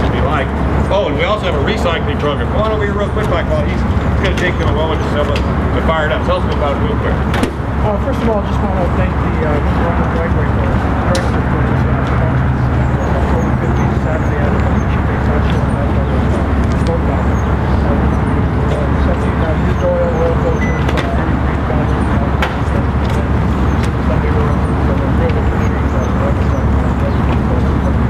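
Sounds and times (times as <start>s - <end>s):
crowd voices: 0.0s - 28.0s
steady low rumble: 0.0s - 28.0s.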